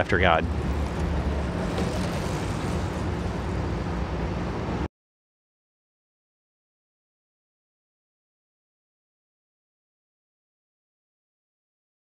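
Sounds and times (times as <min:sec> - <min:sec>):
road traffic rumble and hiss: 0:00.0 - 0:04.9.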